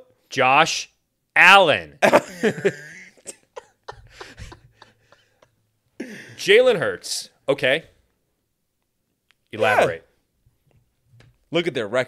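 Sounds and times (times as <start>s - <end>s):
laughter: 2.0s - 5.6s.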